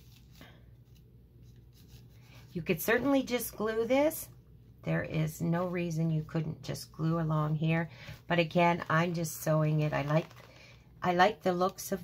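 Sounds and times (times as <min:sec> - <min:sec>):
hands rubbing paper filter: 0:00.0 - 0:03.2
soft brushing: 0:00.0 - 0:04.1, 0:05.1 - 0:10.4.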